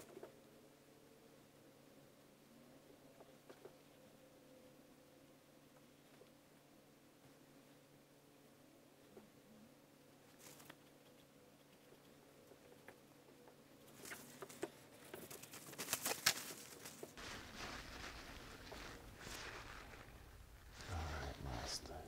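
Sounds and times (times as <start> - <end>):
soft scrubbing rustle: 13.9 - 22.0.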